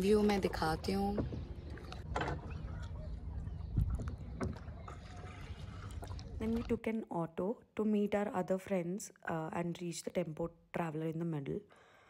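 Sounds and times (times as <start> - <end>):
water lapping and splashing: 0.0 - 7.0
paddle strokes in water: 0.2 - 6.8.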